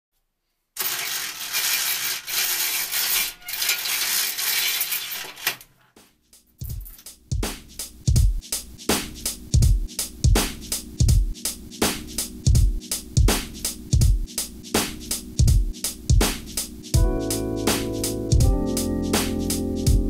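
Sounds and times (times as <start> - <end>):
rattling scraping noise: 0.8 - 5.6
music with electronic drum beat: 6.0 - 20.0.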